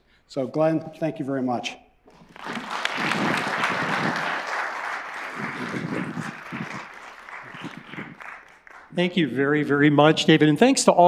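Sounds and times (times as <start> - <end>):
audience applauding: 2.1 - 9.0.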